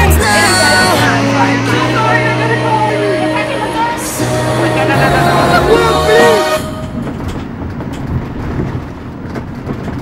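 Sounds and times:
music: 0.0s - 7.2s
van road rumble from inside: 0.0s - 10.0s
faint rattles and ticks: 7.0s - 10.0s.

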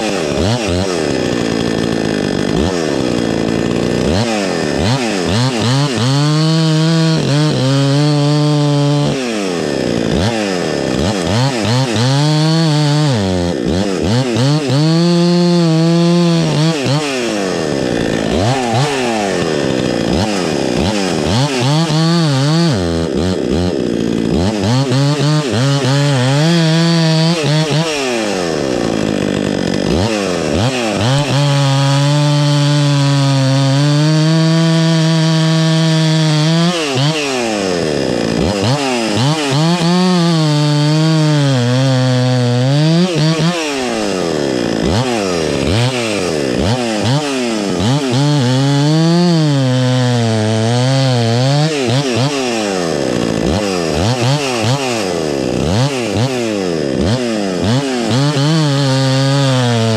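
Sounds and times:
chainsaw cutting log: 0.0s - 59.9s.

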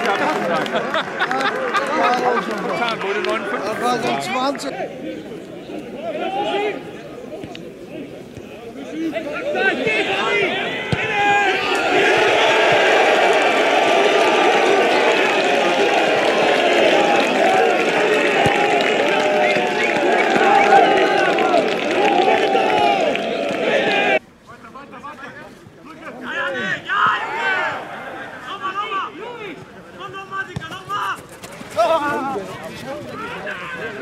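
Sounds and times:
football crowd babble: 0.0s - 34.0s.

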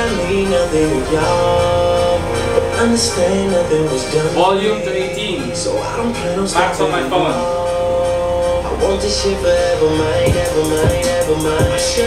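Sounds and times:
song over speakers: 0.0s - 12.0s
steady low bass: 0.0s - 12.0s.

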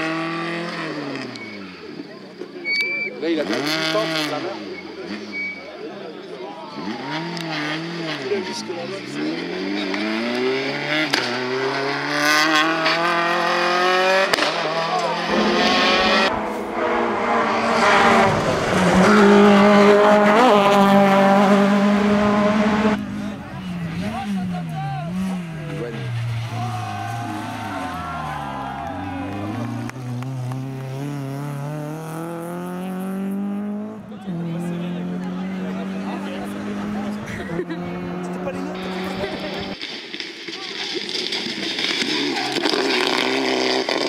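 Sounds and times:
rally car engines revving: 0.0s - 44.0s
quieter engine changing gears: 6.7s - 39.8s.

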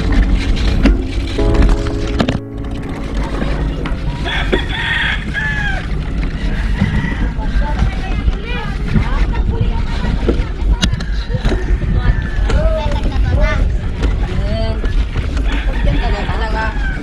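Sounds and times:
wind rumbling on microphone: 0.0s - 17.0s
rooster crowing: 4.3s - 5.9s, 15.5s - 17.0s.

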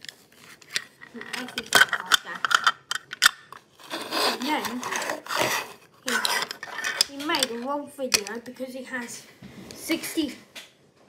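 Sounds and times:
plastic toy pieces clattering: 0.1s - 8.4s.

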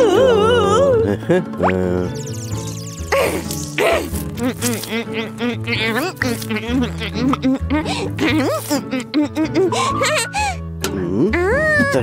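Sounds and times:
background music: 0.0s - 12.0s
high-pitched cartoon voice: 3.1s - 10.3s.

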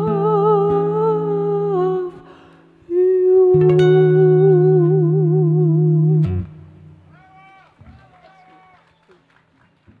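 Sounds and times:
acoustic guitar: 0.0s - 7.2s.

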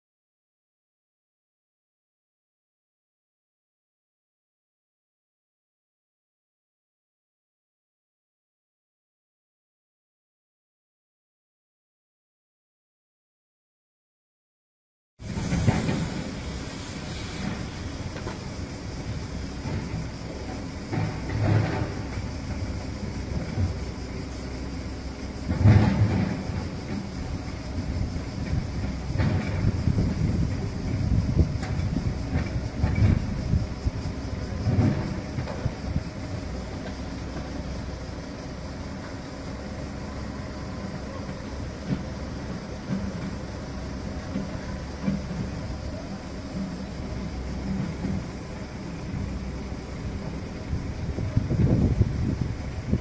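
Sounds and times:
heavy machinery running: 15.2s - 53.0s.

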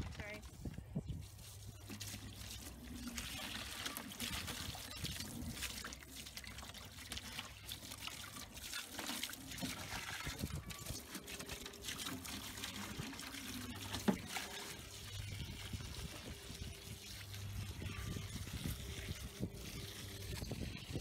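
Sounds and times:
water trickling and splashing: 0.0s - 21.0s.

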